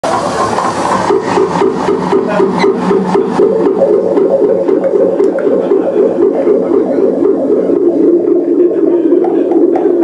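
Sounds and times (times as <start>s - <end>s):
harsh electronic noise pulsing: 0.0s - 10.0s.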